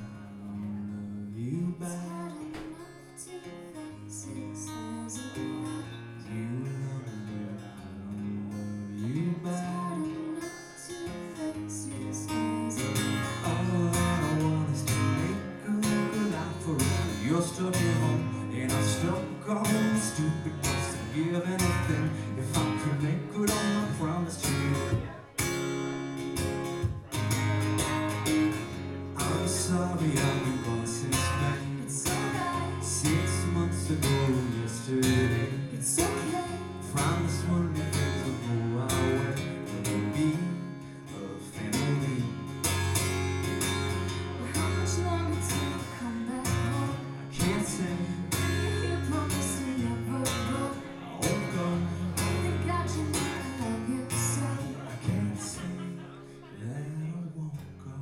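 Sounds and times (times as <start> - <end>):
man singing: 0.0 - 3.3, 4.0 - 25.6, 26.5 - 43.1, 44.1 - 58.0
acoustic guitar strumming: 0.0 - 58.0.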